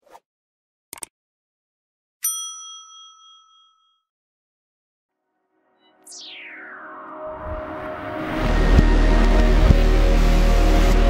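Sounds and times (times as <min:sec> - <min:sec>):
bell ding ringing: 0:02.2 - 0:04.1.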